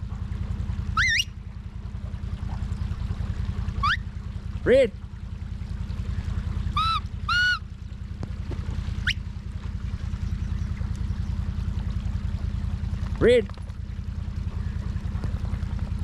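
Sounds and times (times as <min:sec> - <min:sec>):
vehicle engine running: 0:00.0 - 0:16.0.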